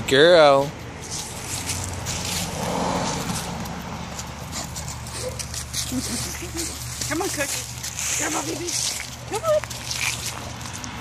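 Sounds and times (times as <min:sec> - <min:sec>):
footsteps on gravel and leaves: 0:01.0 - 0:11.0.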